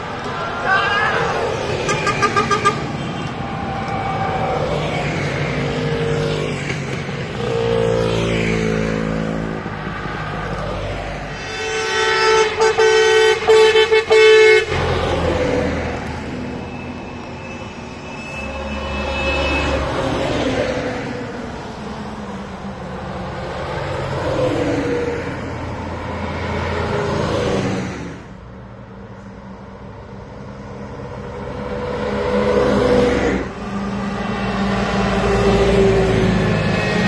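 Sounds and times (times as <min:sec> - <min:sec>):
buses and trucks driving past: 0:00.0 - 0:37.0
heavy truck engine rumbling: 0:00.0 - 0:37.0
vehicle horn honking: 0:01.9 - 0:03.3, 0:11.3 - 0:14.8.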